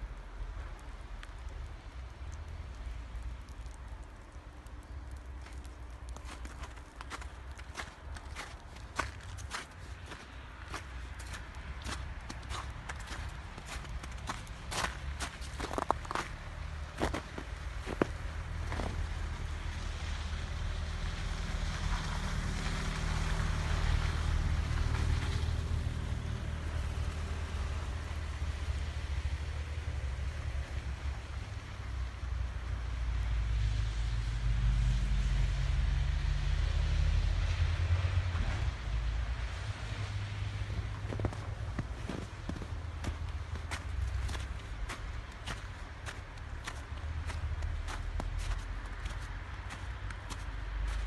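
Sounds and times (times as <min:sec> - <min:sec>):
footsteps crunching in snow: 0:05.4 - 0:19.2, 0:40.6 - 0:51.0.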